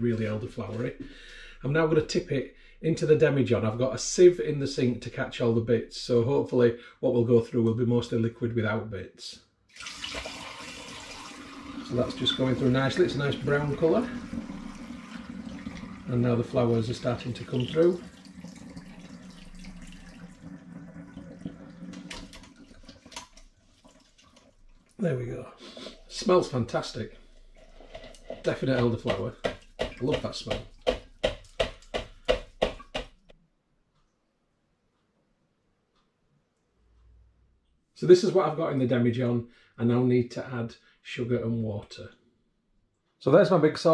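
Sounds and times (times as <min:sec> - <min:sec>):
liquid pouring and splashing: 0:09.7 - 0:25.0, 0:27.1 - 0:32.9
metal sieve tapping plastic funnel: 0:28.5 - 0:33.2.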